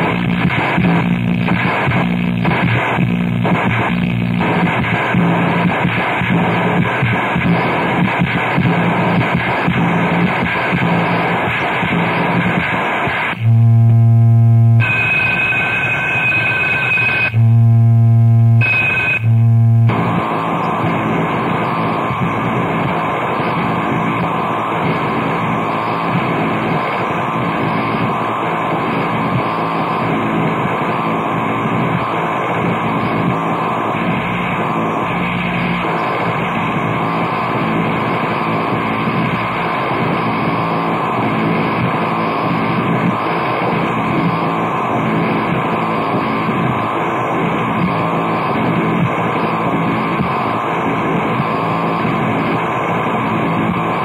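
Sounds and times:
low buzzing drones: 0:00.0 - 0:07.0, 0:13.4 - 0:15.6, 0:17.3 - 0:23.0
harsh noise music: 0:00.0 - 0:15.7, 0:17.2 - 0:53.6.

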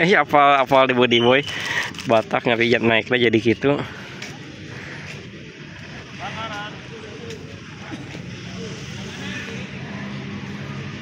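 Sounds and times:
faint distant voices calling: 0:00.0 - 0:11.0.

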